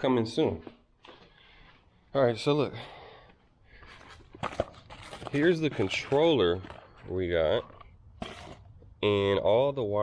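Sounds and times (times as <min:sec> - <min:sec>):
cardboard packaging rustling: 0:04.2 - 0:08.7.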